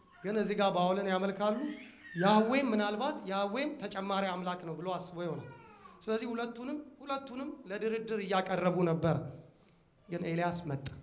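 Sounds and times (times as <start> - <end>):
man preaching through a microphone: 0.2 - 9.4, 10.1 - 11.0.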